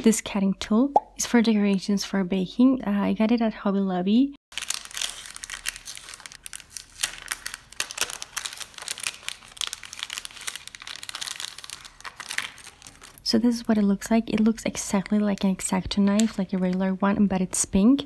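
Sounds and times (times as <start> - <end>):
plastic packaging crinkling: 4.5 - 13.2.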